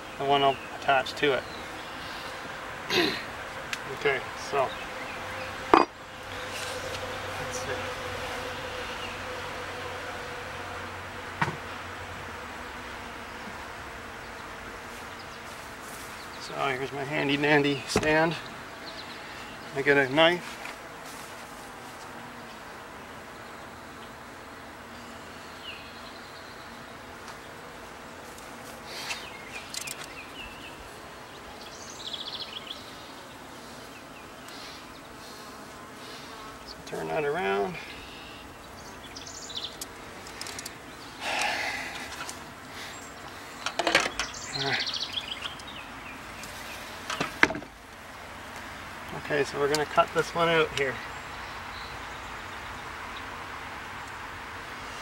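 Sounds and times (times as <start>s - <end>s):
bees buzzing: 0.0s - 55.0s
wooden bars knocking and scraping: 43.7s - 44.3s, 47.1s - 47.7s.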